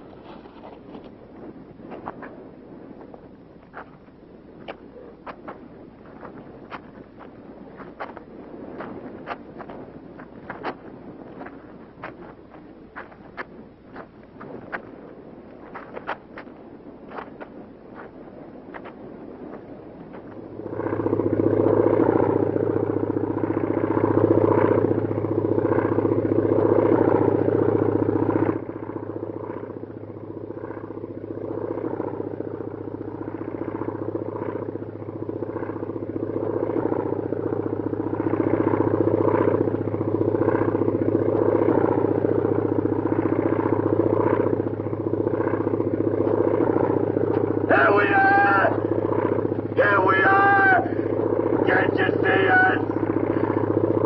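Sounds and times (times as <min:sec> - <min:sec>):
aircraft engine droning: 0:00.0 - 0:54.0.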